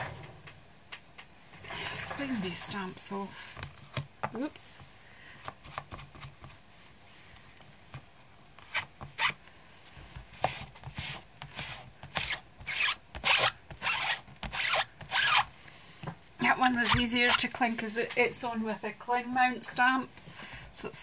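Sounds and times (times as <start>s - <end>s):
scratchy rubbing of rubber stamps: 10.2s - 15.5s.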